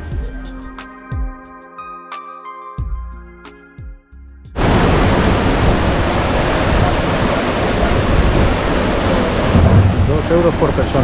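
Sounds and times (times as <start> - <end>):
background music: 0.0 - 4.6
water rushing down a channel: 4.6 - 11.0.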